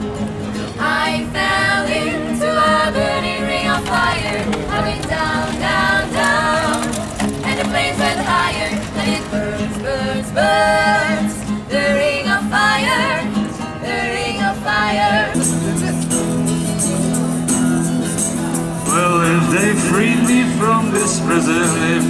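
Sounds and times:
acoustic guitar strumming: 0.0s - 22.0s
people singing together: 0.6s - 16.1s, 16.9s - 22.0s.

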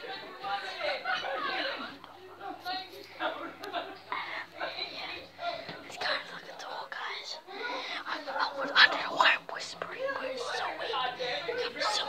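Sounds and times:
child whispering: 5.9s - 10.9s, 11.5s - 12.0s.

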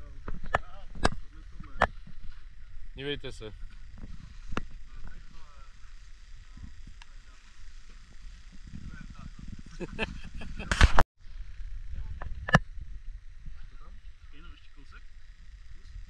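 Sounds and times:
low voices: 0.0s - 10.8s.

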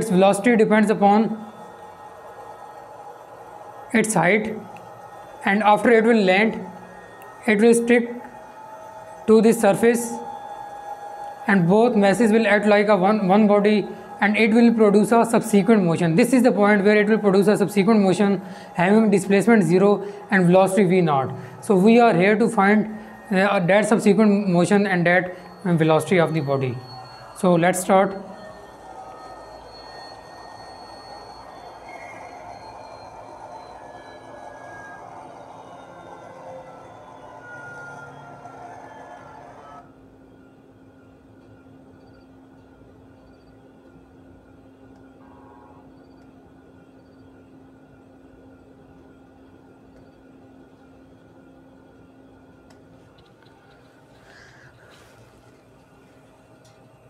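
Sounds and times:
helicopter engine and rotor noise: 0.0s - 57.0s
steady low hum: 0.0s - 57.0s.

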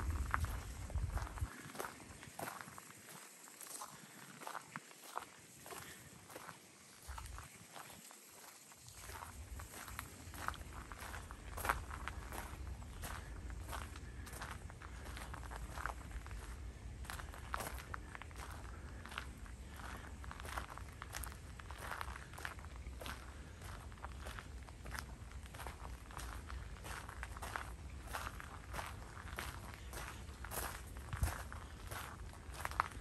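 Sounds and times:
low rumble: 0.0s - 1.5s
footsteps crunching on wood chips: 0.0s - 33.0s.

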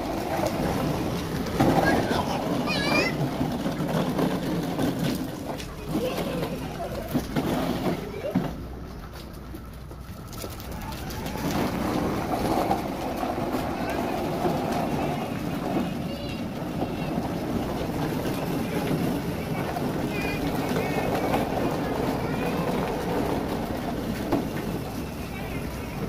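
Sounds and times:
children calling and chattering: 0.0s - 26.0s
toy car wheels rolling on concrete: 0.0s - 26.0s.

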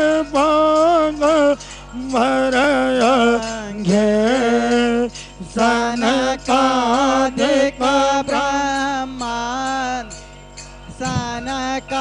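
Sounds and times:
person singing a hymn: 0.0s - 10.2s, 10.9s - 12.0s.

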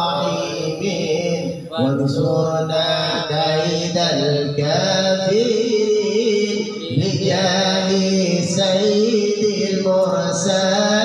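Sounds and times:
man chanting devotional song: 0.0s - 11.0s.

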